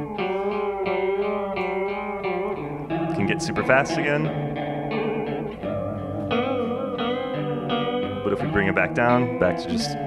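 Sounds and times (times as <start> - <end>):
guitar with wobbling chorus effect: 0.0 - 10.0.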